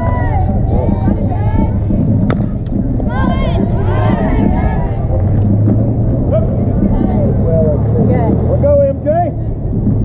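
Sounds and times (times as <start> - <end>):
people shouting: 0.0 - 2.3, 2.9 - 5.6
steady low rumble: 0.0 - 10.0.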